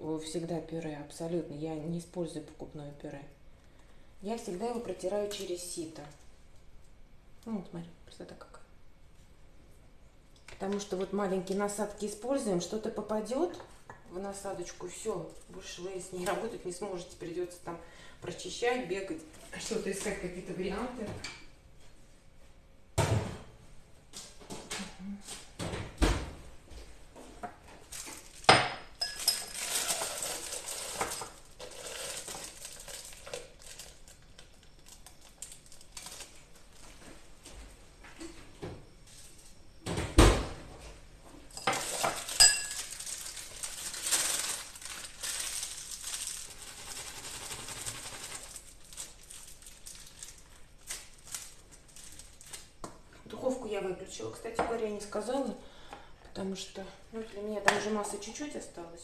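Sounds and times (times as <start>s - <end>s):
plastic piping bag rustling: 27.8s - 37.1s, 41.6s - 52.9s
glass and utensils clinking: 28.6s - 30.2s, 41.6s - 43.0s.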